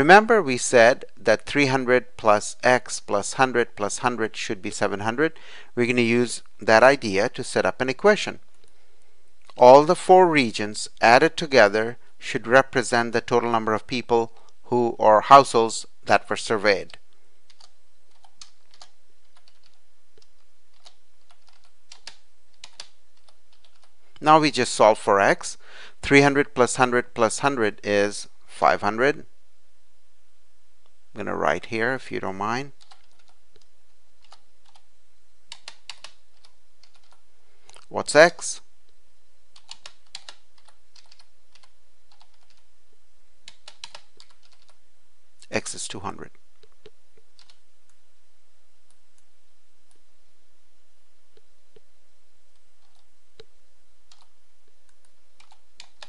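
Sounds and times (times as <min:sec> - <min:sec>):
faint steady hum: 0:00.0 - 0:56.0
computer keyboard typing: 0:16.9 - 0:24.3, 0:32.8 - 0:34.9, 0:35.5 - 0:37.8, 0:39.5 - 0:42.7, 0:43.4 - 0:44.8, 0:46.8 - 0:47.6, 0:52.8 - 0:53.5, 0:54.1 - 0:54.3, 0:54.9 - 0:56.0.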